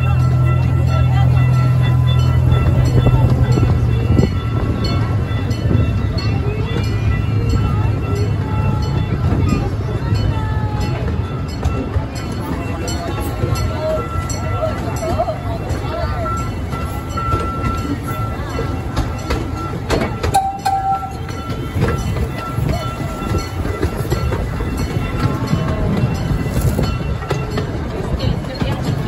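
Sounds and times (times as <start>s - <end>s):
train wheels rumbling: 0.0s - 29.0s.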